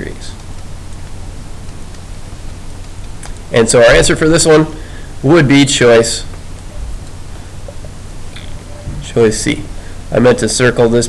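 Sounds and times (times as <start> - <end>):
low hum: 0.0 - 10.4
microphone hiss: 0.0 - 11.0.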